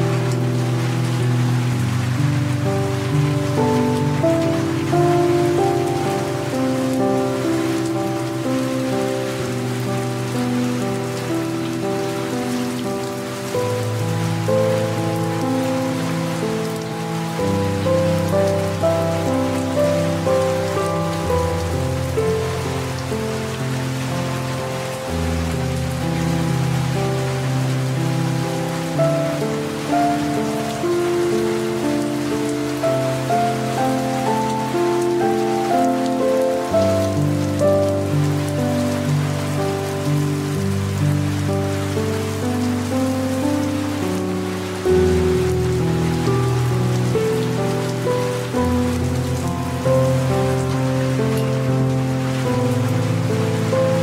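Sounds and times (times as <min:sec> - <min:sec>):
light rain falling: 0:00.0 - 0:54.0
soft slow piano music: 0:00.0 - 0:54.0.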